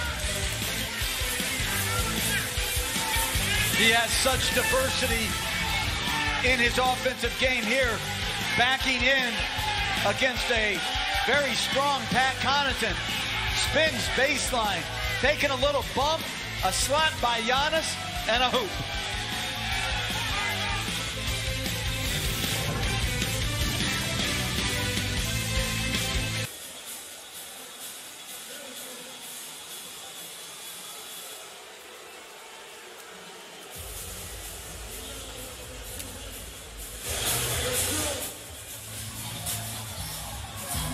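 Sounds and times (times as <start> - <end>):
music with heavy bass beat: 18.0 - 26.5.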